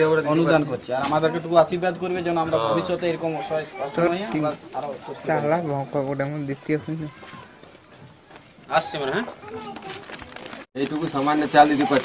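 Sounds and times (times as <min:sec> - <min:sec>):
people talking: 0:08.8 - 0:12.0.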